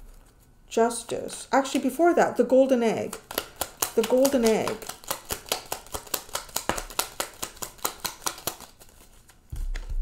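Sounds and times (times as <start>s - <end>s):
cards shuffled by hand: 2.9s - 10.0s.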